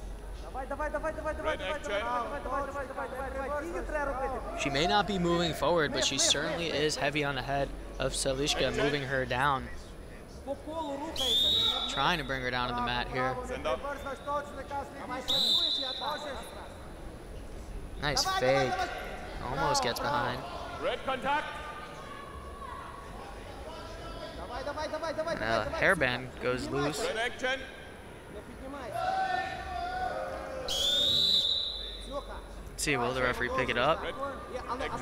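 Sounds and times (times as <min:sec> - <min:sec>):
long high whistle: 0:15.3 - 0:16.4, 0:30.7 - 0:32.2.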